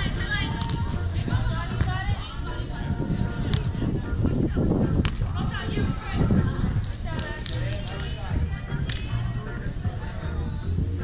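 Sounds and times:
voices: 0:00.0 - 0:11.0
hand slapping volleyball: 0:00.5 - 0:00.9, 0:01.8 - 0:02.0, 0:03.5 - 0:03.8, 0:05.0 - 0:05.3, 0:06.8 - 0:08.2, 0:08.8 - 0:09.1.

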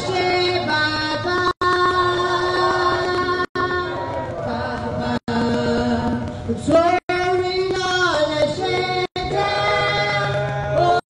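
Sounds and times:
young female voice singing: 0:00.0 - 0:11.0.

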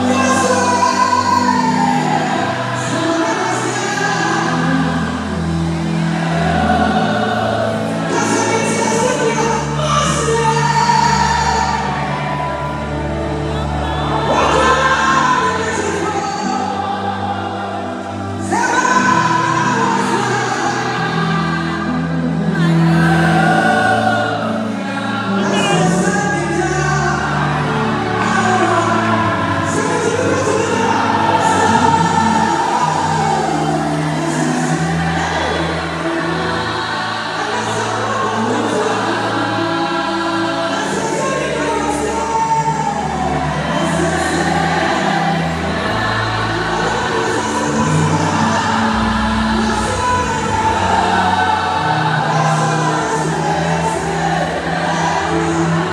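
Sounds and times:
band with held bass notes: 0:00.0 - 0:55.9
choir singing together: 0:00.0 - 0:55.9
lead singer: 0:00.0 - 0:55.9.

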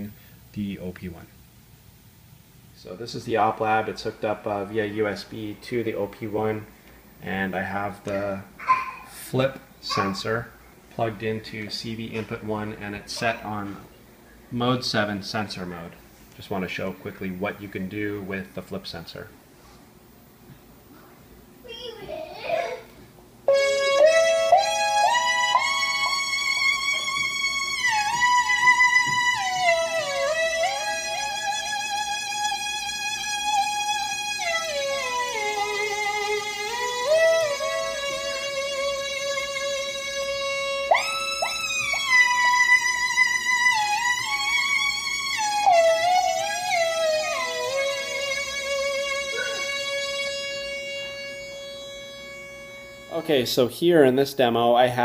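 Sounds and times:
synthesizer notes sliding in pitch: 0:34.5 - 0:53.2.

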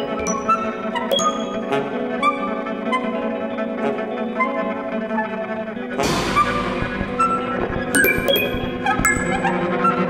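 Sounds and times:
held pitched tones: 0:07.1 - 0:09.6.

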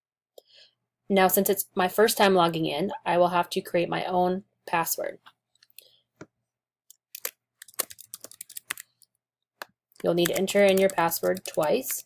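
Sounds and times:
computer keyboard typing: 0:06.9 - 0:09.1, 0:09.9 - 0:12.0.

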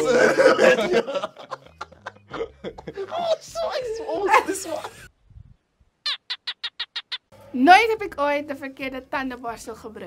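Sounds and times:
cartoon frog calls: 0:06.0 - 0:07.4.

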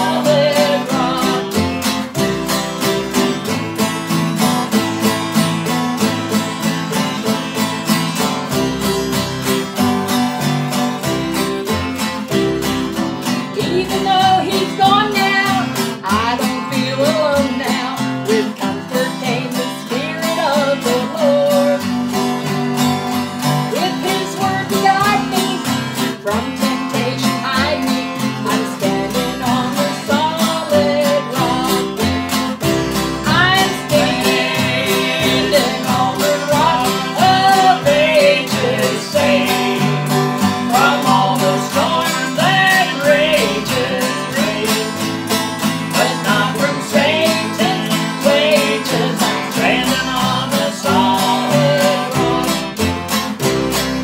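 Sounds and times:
woman singing a hymn: 0:00.0 - 0:01.8, 0:13.5 - 0:22.1, 0:23.7 - 0:32.2, 0:33.1 - 0:45.2, 0:45.9 - 0:52.9
acoustic guitar strumming: 0:00.0 - 0:54.0.

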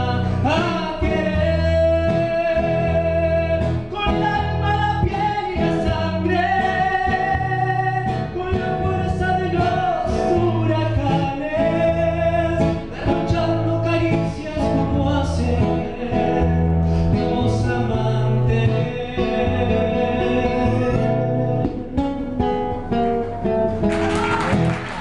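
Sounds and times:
man singing: 0:00.0 - 0:23.0
acoustic guitar: 0:00.0 - 0:25.0.

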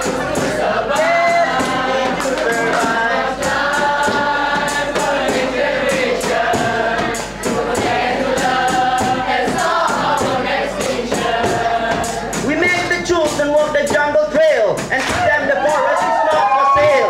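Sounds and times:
young voices singing together: 0:00.0 - 0:13.3
percussive beat: 0:00.0 - 0:17.0.

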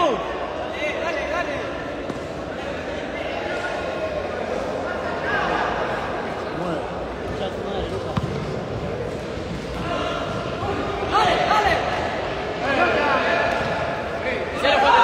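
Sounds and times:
people shouting in a hall: 0:09.7 - 0:15.0.

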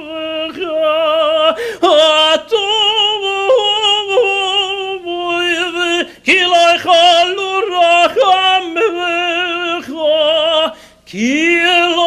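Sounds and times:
man singing chant with vibrato: 0:00.0 - 0:12.0.

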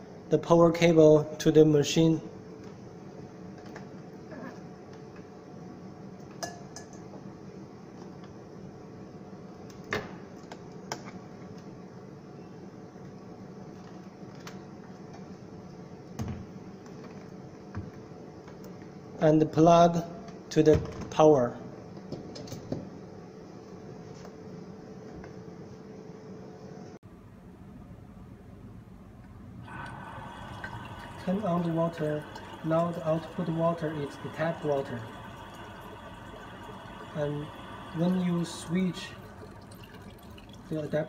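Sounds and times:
steady room hum: 0:00.0 - 0:41.0.

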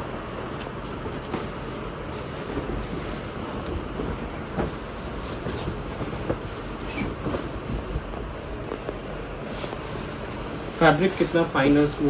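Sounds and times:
steady background hiss: 0:00.1 - 0:12.0
comforter fabric rustling: 0:04.0 - 0:12.0.

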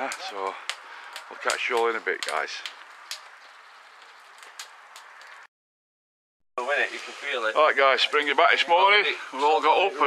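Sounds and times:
outdoor background hiss: 0:06.6 - 0:10.0.

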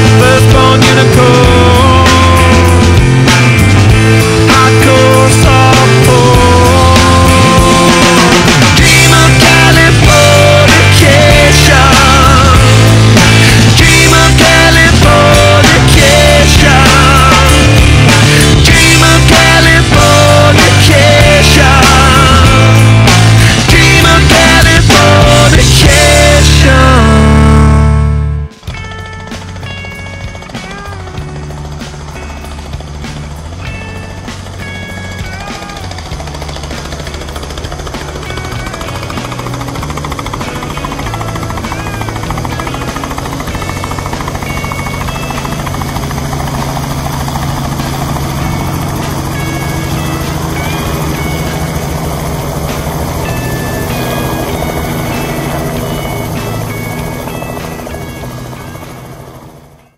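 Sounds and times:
helicopter rotor chopping: 0:00.0 - 0:59.9.

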